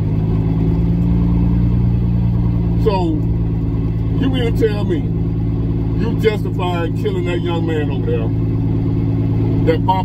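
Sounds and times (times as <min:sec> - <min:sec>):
truck engine droning: 0:00.0 - 0:10.0.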